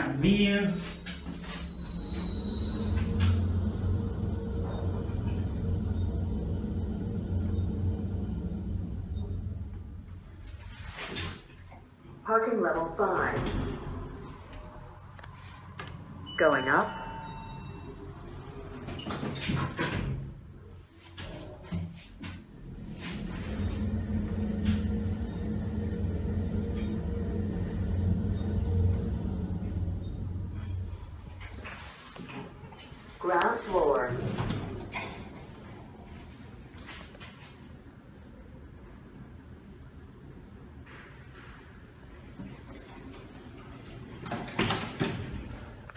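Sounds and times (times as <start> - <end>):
steady tone: 0.0 - 10.8, 13.0 - 19.1, 22.4 - 31.7
elevator doors sliding closed: 0.0 - 11.7, 12.9 - 36.2, 40.7 - 45.9.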